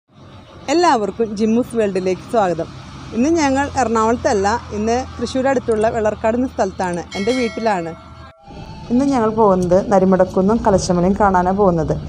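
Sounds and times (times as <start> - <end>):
woman speaking: 0.7 - 8.0, 8.9 - 12.0.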